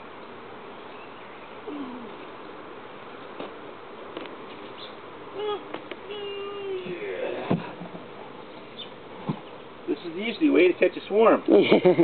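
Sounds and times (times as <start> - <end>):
honeybees buzzing: 0.0 - 11.5.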